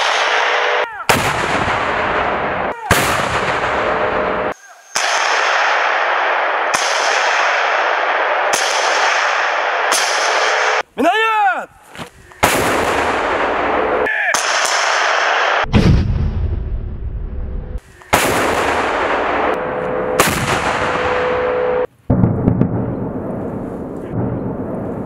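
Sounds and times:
heavy mortar blasts: 0:00.0 - 0:10.8, 0:12.3 - 0:17.2, 0:17.8 - 0:25.0
rumbling shell bursts: 0:00.0 - 0:10.8, 0:12.4 - 0:25.0.

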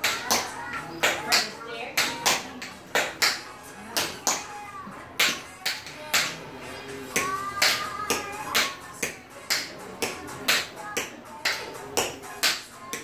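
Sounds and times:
electro-swing pop music: 0:00.0 - 0:13.0
tap shoes on tile floor: 0:07.1 - 0:13.0.

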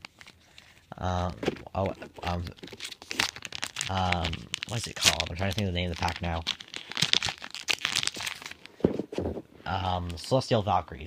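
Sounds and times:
foil pack crinkling: 0:01.7 - 0:09.0.

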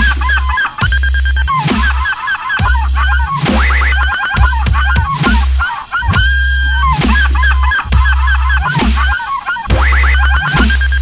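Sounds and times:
dubstep with chopped seagull calls: 0:00.0 - 0:11.0.

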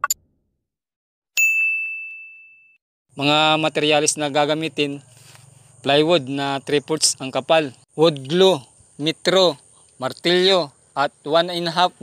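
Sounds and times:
notification bell ding: 0:01.4 - 0:02.8.

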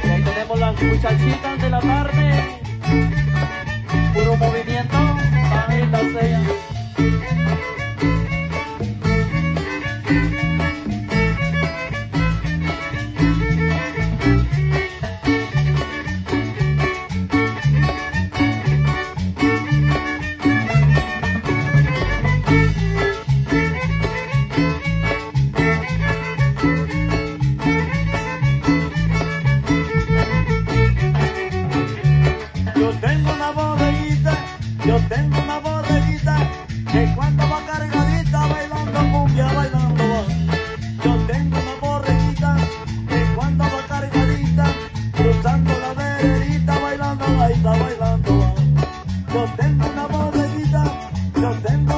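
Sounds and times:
violins: 0:00.0 - 0:43.6
bass line: 0:00.0 - 0:51.9
guitar: 0:00.0 - 0:51.9.

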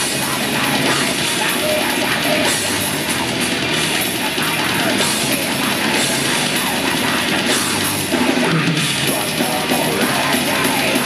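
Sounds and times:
distorted guitars: 0:00.0 - 0:11.0
drums: 0:00.0 - 0:11.0
harsh screamed vocals: 0:00.0 - 0:11.0.

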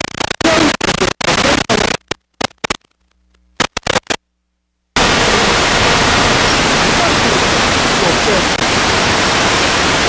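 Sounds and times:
loud static hiss: 0:00.0 - 0:10.0.

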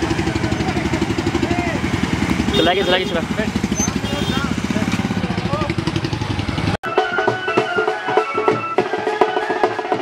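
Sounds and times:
motorcycle engines running: 0:00.0 - 0:06.8
men talking: 0:00.2 - 0:05.8
music with drum beat: 0:05.2 - 0:10.0.

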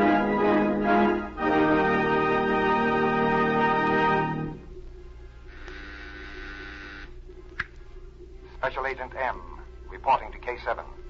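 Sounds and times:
soft organ chord: 0:00.0 - 0:04.7
low mains hum: 0:00.0 - 0:11.0.

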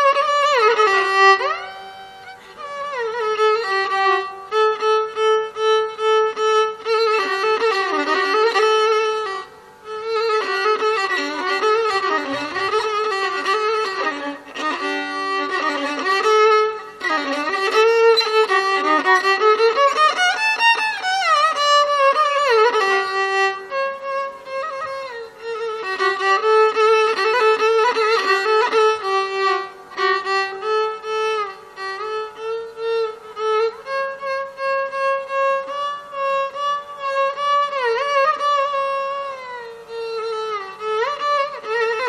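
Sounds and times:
faint steady drone: 0:00.0 - 0:42.0
solo violin melody: 0:00.0 - 0:42.0.

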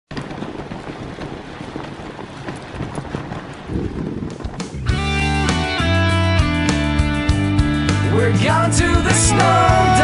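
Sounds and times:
paws pattering on snow: 0:00.1 - 0:04.8
sled rushing over snow: 0:00.1 - 0:05.8.

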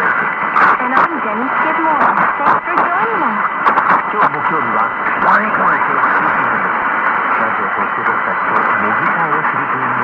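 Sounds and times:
faint radio speech: 0:00.0 - 0:10.0
radio hiss and static crackles: 0:00.0 - 0:10.0.

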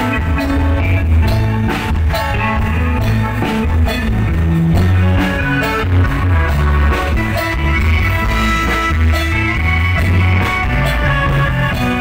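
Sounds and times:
bass guitar: 0:00.0 - 0:12.0
drum kit: 0:00.0 - 0:12.0
electric guitar: 0:00.0 - 0:12.0
keyboard: 0:00.0 - 0:12.0.

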